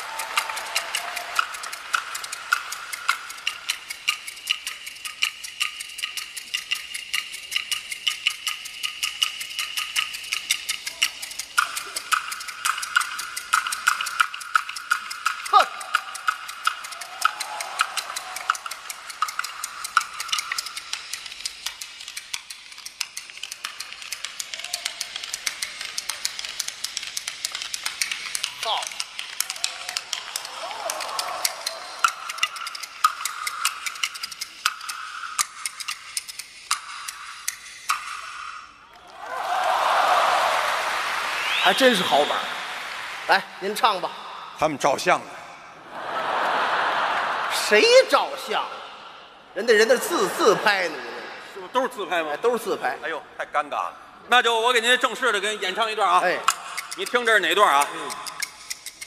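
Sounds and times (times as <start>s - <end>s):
bamboo clappers clacking: 0.0s - 42.7s, 49.6s - 59.0s.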